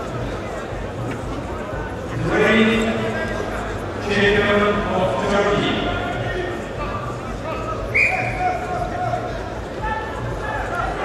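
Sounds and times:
sports hall noise: 0:00.0 - 0:11.0.

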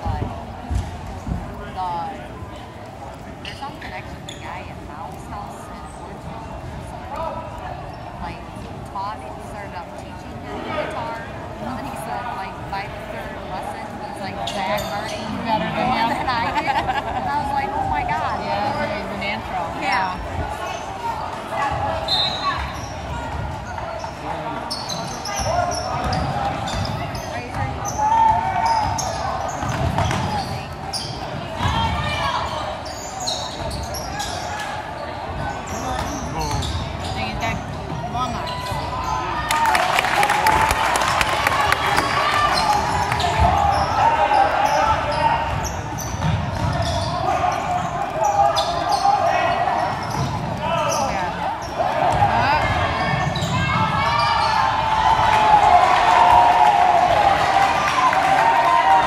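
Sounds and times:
voices in echoing gym: 0:00.0 - 0:59.0
basketball bouncing on court: 0:25.0 - 0:32.1, 0:44.6 - 0:47.9, 0:49.8 - 0:54.5.

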